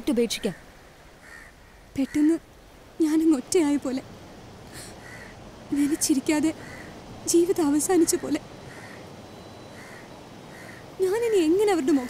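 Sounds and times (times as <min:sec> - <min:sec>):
woman's voice: 0:00.0 - 0:00.6, 0:02.0 - 0:02.4, 0:03.0 - 0:04.1, 0:05.7 - 0:06.6, 0:07.2 - 0:08.5, 0:11.0 - 0:12.0
outdoor background hiss: 0:00.0 - 0:12.0.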